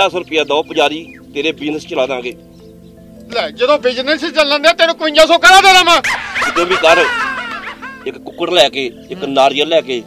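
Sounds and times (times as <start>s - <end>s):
background music: 0.0s - 10.0s
high yelping calls: 0.9s - 1.4s, 6.0s - 8.2s.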